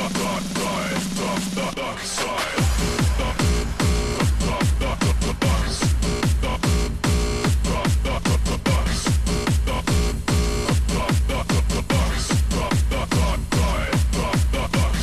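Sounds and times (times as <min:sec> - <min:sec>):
electronic dance music: 0:00.0 - 0:15.0
hi-hat percussion: 0:02.4 - 0:15.0
deep kick drum thumps: 0:02.6 - 0:15.0.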